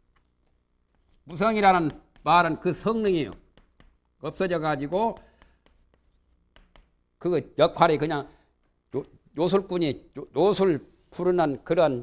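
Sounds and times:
chalk tapping and scratching: 0:00.0 - 0:07.0.

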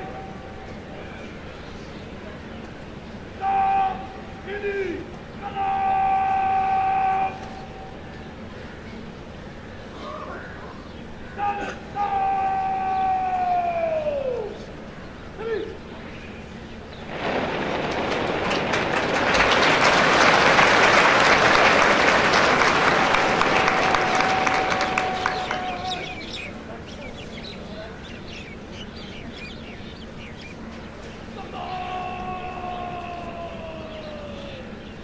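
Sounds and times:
person shouting command: 0:03.4 - 0:07.4, 0:11.4 - 0:14.6
crowd applause: 0:17.1 - 0:26.5.

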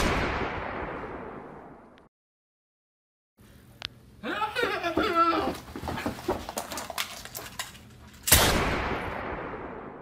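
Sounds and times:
person bleating cry: 0:04.2 - 0:05.6
handgun shot: 0:08.3 - 0:09.1.

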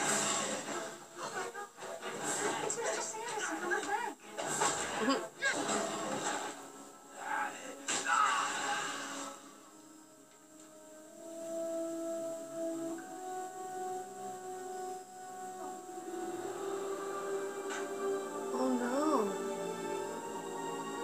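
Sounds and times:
slow long-held music notes: 0:04.4 - 0:21.0.

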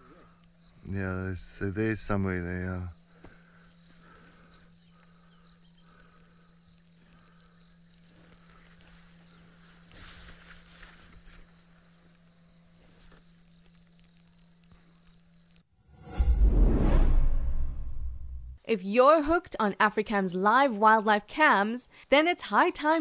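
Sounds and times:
steady low hum: 0:00.0 - 0:18.6
rustling crackle: 0:06.8 - 0:15.6.

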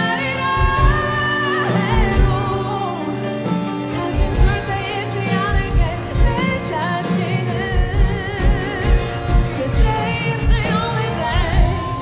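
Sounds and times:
keyboard: 0:00.0 - 0:12.0
woman singing with vibrato: 0:00.0 - 0:12.0.

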